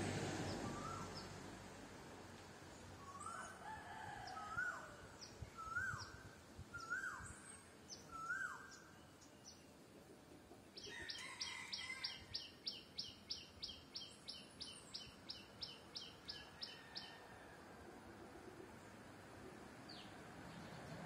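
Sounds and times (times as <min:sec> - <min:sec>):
rising and falling bird call: 0:00.4 - 0:01.4, 0:03.0 - 0:08.9.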